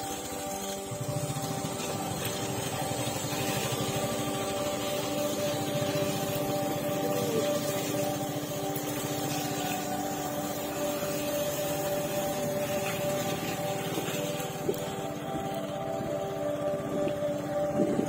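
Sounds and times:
motorcycle engine running: 0.0 - 18.0.

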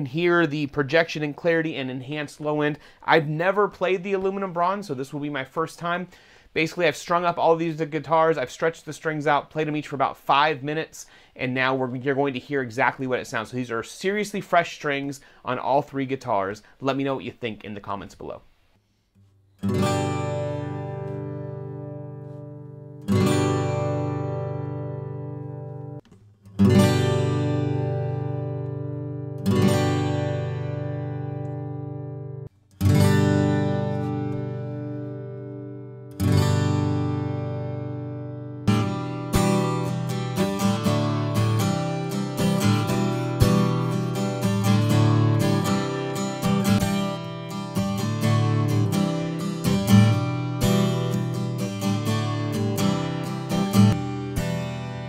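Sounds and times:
acoustic guitar picked notes: 19.2 - 55.0
acoustic guitar strummed chords: 19.6 - 55.0.

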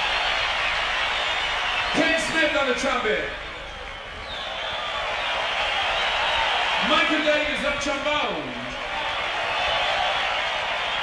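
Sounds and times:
stadium crowd cheering and applauding: 0.0 - 11.0.

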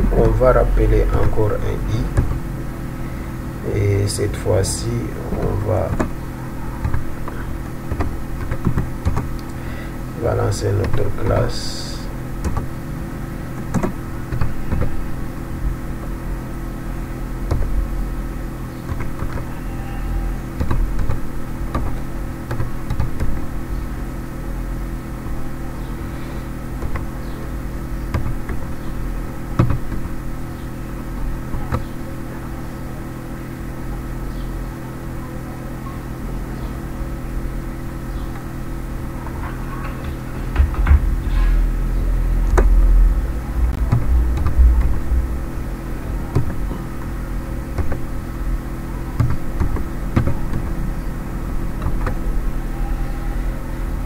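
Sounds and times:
steady electrical hum: 0.0 - 54.0
computer keyboard keystrokes: 6.8 - 9.4, 12.4 - 12.7, 13.6 - 15.0, 17.5 - 17.7
low rumble: 39.9 - 46.6.

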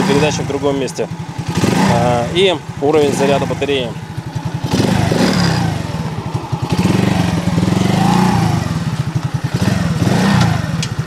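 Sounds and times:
moped engine idling: 0.0 - 11.0.

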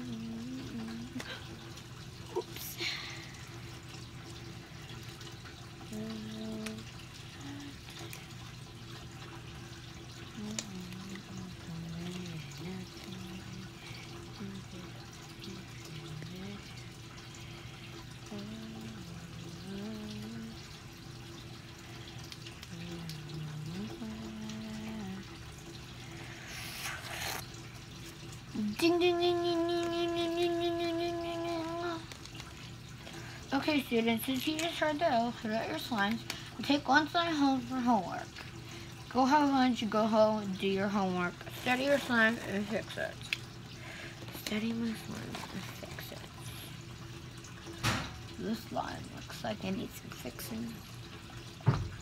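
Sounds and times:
girl humming: 0.0 - 1.5
low background hum: 0.0 - 52.0.

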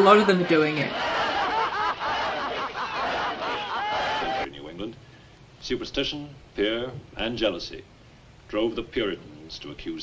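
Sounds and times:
woman laughing wildly: 1.1 - 4.2.

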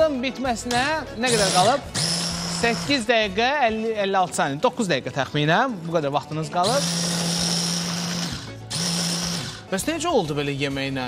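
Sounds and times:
immersion blender running: 1.3 - 3.1, 6.6 - 9.7.

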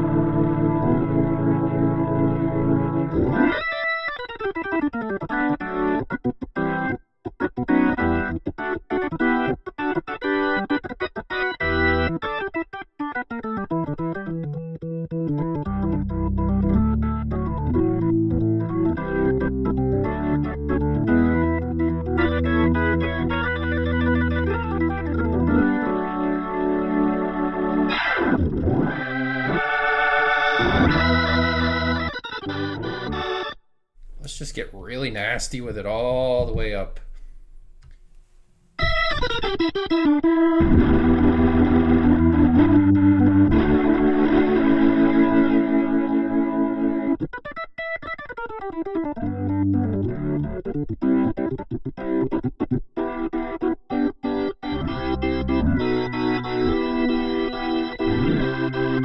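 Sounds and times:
organ through rotary speaker: 0.0 - 14.6, 15.2 - 48.2, 48.9 - 59.0.

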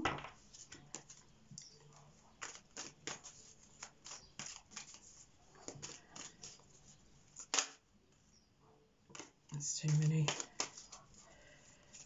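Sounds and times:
cards being shuffled: 0.6 - 1.3, 2.4 - 7.8, 9.1 - 12.0.

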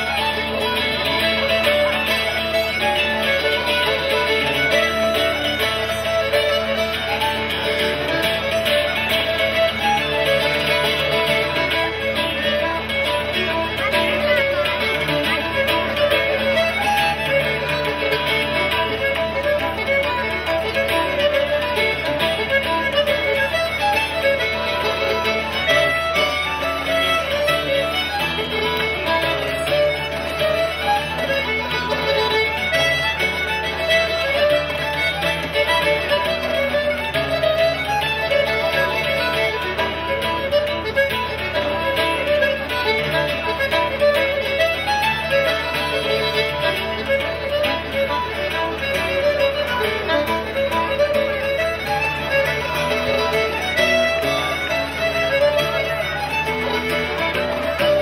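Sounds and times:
button accordion: 0.0 - 58.0
fiddle: 0.0 - 58.0
strummed acoustic guitar: 0.0 - 58.0.

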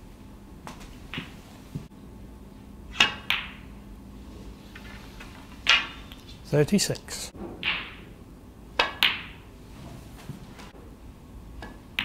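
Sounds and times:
snooker balls clicking: 0.6 - 1.9, 2.9 - 3.7, 4.7 - 9.5, 11.6 - 12.0
cue tip striking ball: 0.7 - 1.9, 2.9 - 3.7, 5.6 - 6.2, 7.4 - 9.5, 11.6 - 12.0.

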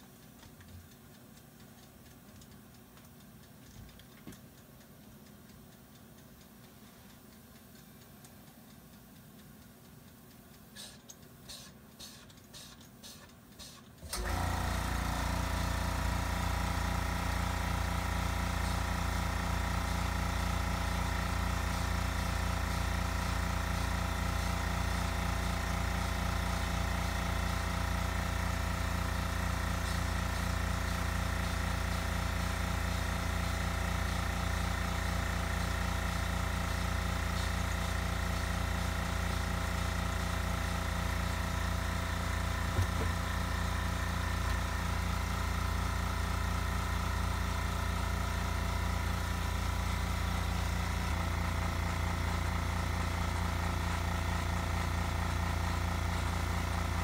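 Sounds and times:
air compressor motor running: 10.7 - 57.0.

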